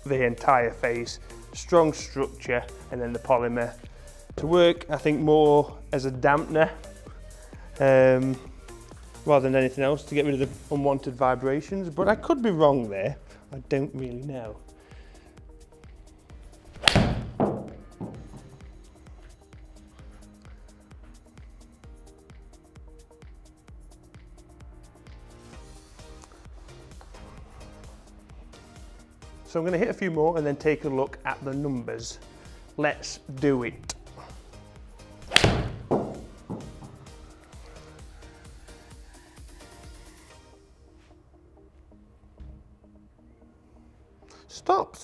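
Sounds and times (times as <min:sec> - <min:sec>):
background music: 0:00.0 - 0:45.0
golf club striking ball: 0:16.8 - 0:18.6, 0:35.2 - 0:37.1
small knock: 0:16.8 - 0:18.6, 0:35.3 - 0:37.0
dull thud: 0:16.8 - 0:18.7, 0:35.3 - 0:37.1.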